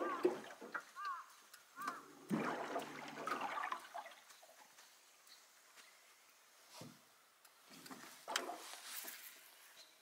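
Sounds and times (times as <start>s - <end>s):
water splashing around a boat: 2.1s - 4.6s.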